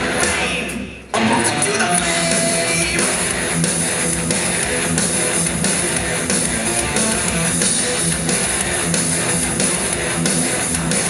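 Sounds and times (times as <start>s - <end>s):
electric guitar strumming: 0.0s - 11.0s
live rock band playing: 1.1s - 11.0s.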